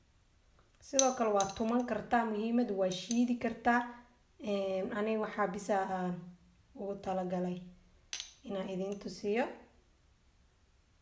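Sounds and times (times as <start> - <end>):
woman talking: 0.9 - 7.6, 8.4 - 9.7.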